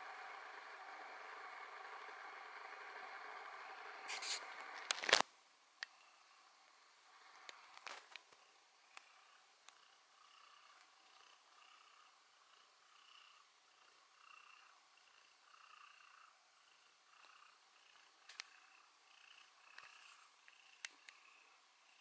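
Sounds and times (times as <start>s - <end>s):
cat purring: 0.0s - 5.2s, 5.8s - 22.0s.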